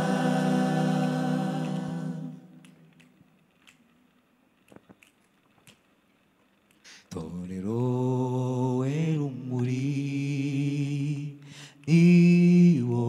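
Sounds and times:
a cappella choir singing: 0:00.0 - 0:02.8, 0:07.1 - 0:13.0
faint clicks: 0:02.6 - 0:07.2.

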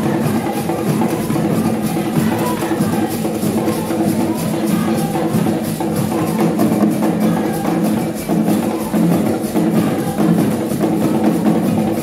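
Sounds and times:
drum ensemble playing: 0:00.0 - 0:12.0.

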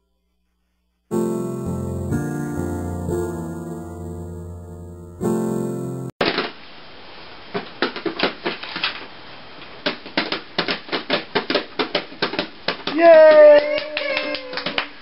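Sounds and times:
piano music: 0:01.1 - 0:06.2
baby tapping plastic toy drums: 0:09.8 - 0:13.0.

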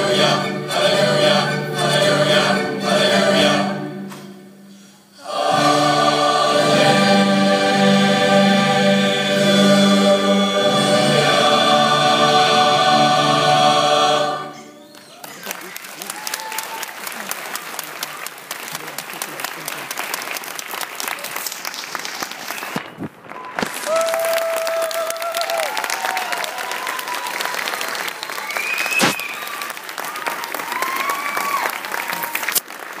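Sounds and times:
choir singing a held chord: 0:00.0 - 0:14.8
audience applause: 0:14.9 - 0:33.0.

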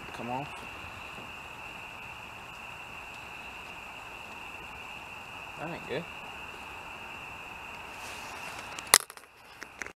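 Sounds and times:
night insect chorus: 0:00.0 - 0:10.0.

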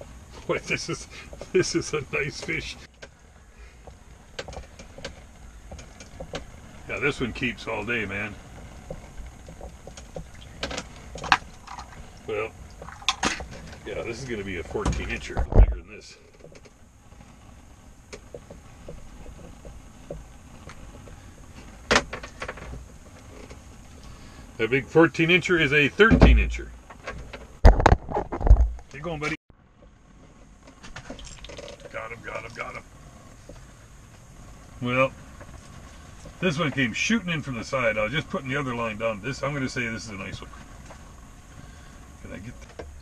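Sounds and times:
faint clicks and rustles: 0:00.0 - 0:25.9, 0:26.6 - 0:43.0
low steady hum: 0:00.0 - 0:43.0
low steady rumble: 0:00.0 - 0:43.0.

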